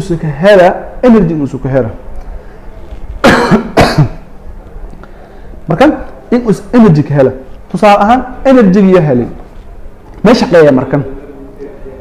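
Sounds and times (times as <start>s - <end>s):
man clearing his throat: 3.2s - 4.3s.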